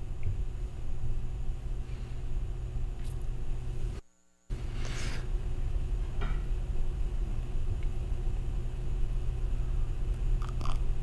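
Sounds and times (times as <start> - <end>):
low studio room rumble: 0.0 - 11.0.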